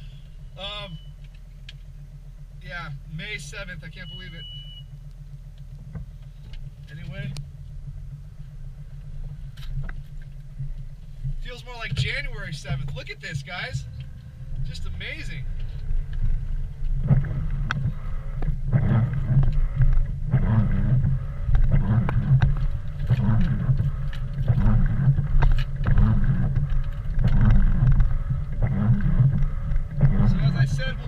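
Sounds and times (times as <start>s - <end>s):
car rumbling slowly: 0.0s - 31.0s
windshield wipers sweeping snow: 16.8s - 31.0s.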